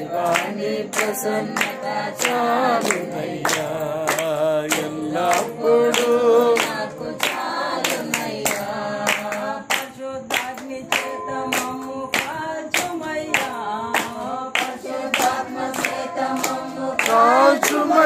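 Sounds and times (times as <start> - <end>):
group singing a worship song: 0.0 - 18.0
hand claps: 0.0 - 18.0.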